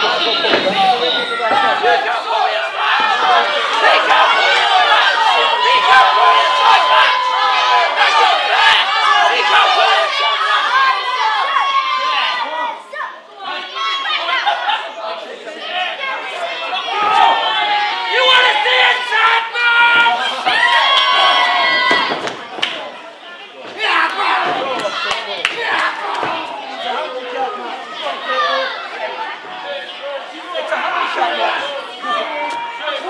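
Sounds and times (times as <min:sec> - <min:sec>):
crowd chattering and shouting: 0:00.0 - 0:33.0.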